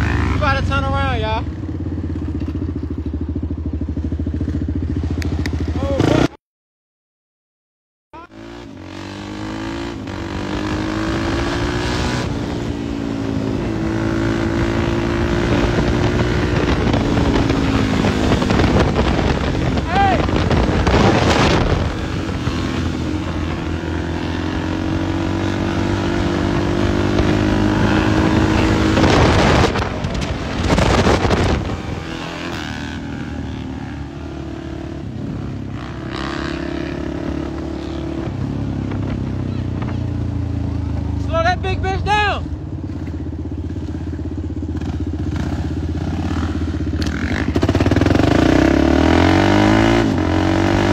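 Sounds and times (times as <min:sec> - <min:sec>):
dirt bike engines revving: 0:00.0 - 0:06.4, 0:08.2 - 0:50.9.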